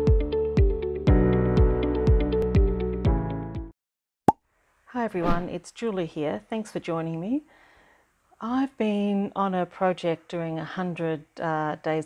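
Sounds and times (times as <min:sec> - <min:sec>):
woman's voice: 0:04.9 - 0:07.5, 0:08.4 - 0:12.0.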